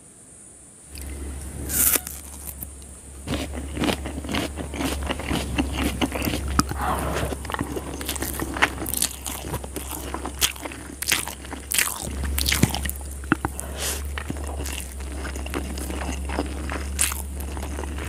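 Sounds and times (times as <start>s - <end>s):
crunching bites and chewing: 0.9s - 18.0s.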